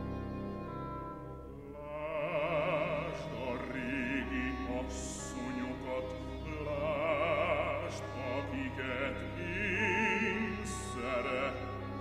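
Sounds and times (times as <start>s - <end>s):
orchestra soft sustained chords: 0.0s - 12.0s
operatic voice singing with vibrato: 1.7s - 12.0s.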